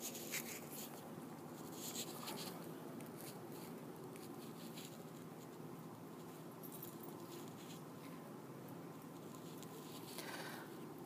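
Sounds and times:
faint rustling and scratching: 0:00.0 - 0:11.0
low steady room noise: 0:00.0 - 0:11.0.

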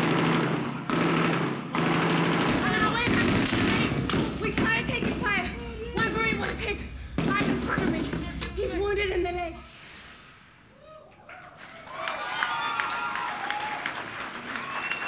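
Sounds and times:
gunfire with sharp cracks: 0:00.0 - 0:06.5.

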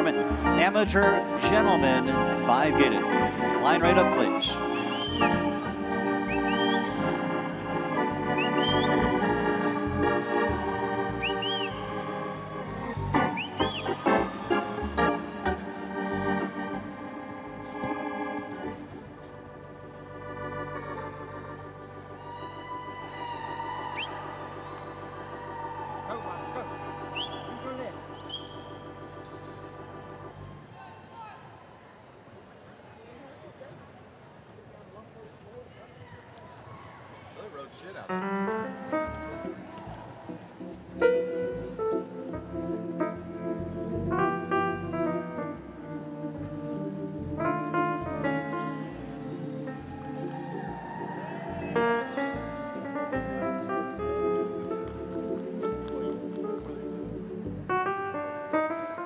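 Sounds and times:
organ chords: 0:00.0 - 0:30.6, 0:38.1 - 0:59.0
short rising whistles: 0:04.7 - 0:05.4, 0:06.3 - 0:07.0, 0:08.3 - 0:09.1, 0:11.2 - 0:11.8, 0:13.3 - 0:14.0, 0:27.1 - 0:29.6.

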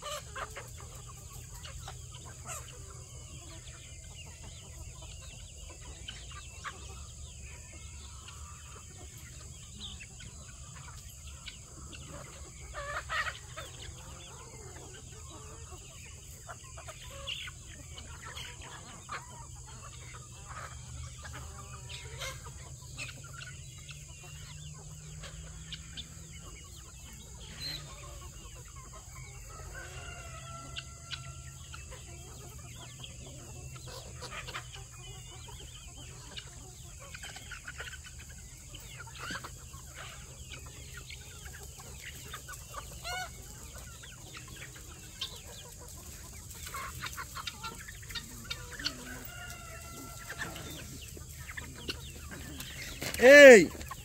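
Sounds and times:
chickens clucking: 0:00.0 - 0:54.0
drawn-out chicken calls: 0:00.0 - 0:54.0.

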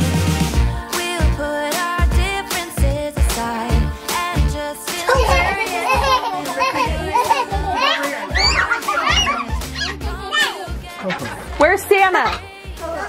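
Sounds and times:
background music with beat: 0:00.0 - 0:13.0
children chattering and laughing: 0:04.9 - 0:13.0.

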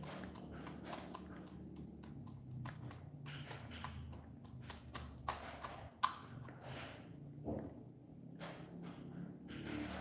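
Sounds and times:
beak tapping grain in plastic cup: 0:00.0 - 0:06.6.

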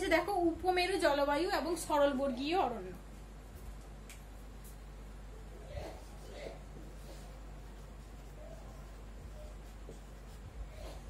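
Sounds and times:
marker pen scratching on whiteboard: 0:05.7 - 0:11.0.

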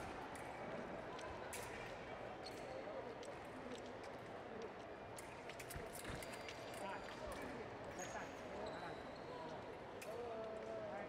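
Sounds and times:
indistinct voices in a hall: 0:00.0 - 0:11.0.

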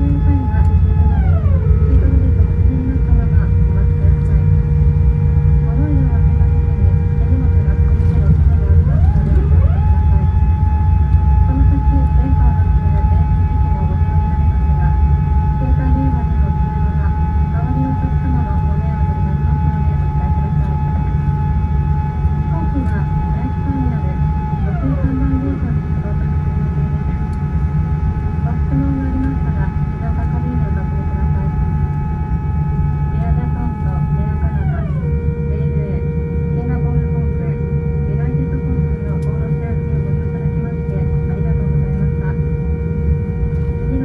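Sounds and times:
airplane cabin rumble: 0:00.0 - 0:44.0
rising whine: 0:00.0 - 0:44.0.

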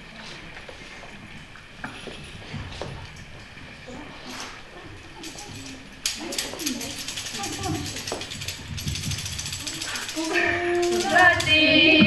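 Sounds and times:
murmur in the room: 0:00.0 - 0:12.0
women singing: 0:10.2 - 0:12.0.

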